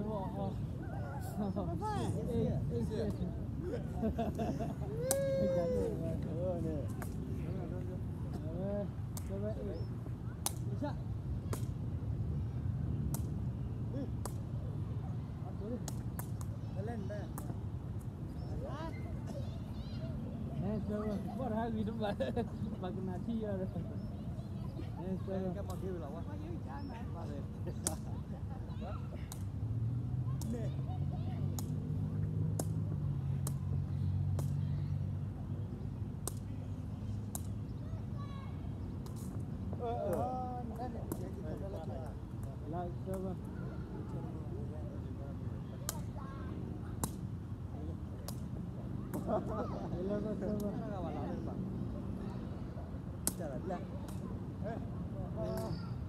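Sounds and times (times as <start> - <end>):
faint voices calling: 0.0 - 11.2.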